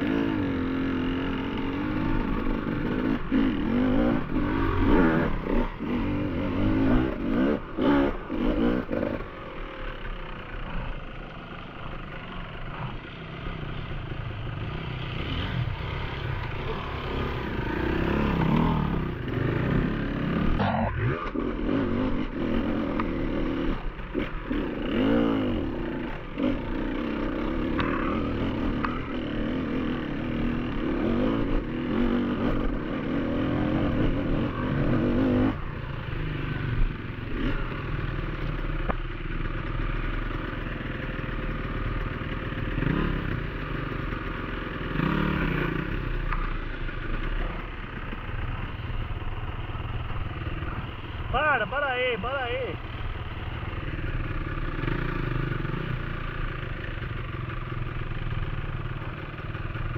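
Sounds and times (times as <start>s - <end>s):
motorcycle engine revving: 0.0s - 59.9s.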